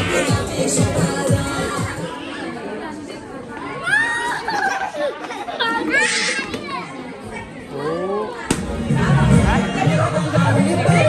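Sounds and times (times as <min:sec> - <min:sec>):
background music with a beat: 0:00.0 - 0:02.0
chatter: 0:00.0 - 0:11.0
children shouting: 0:03.7 - 0:05.0.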